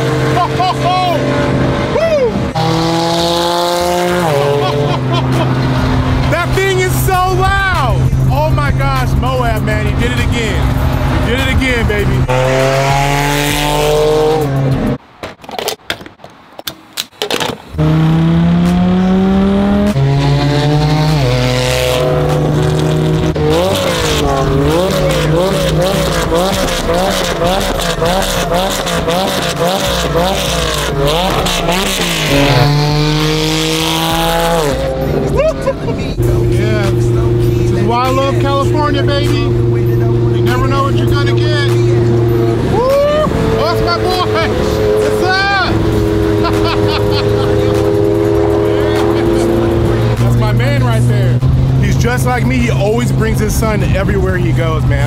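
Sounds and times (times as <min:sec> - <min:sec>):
car engine accelerating: 0:00.0 - 0:15.0, 0:17.7 - 0:55.0.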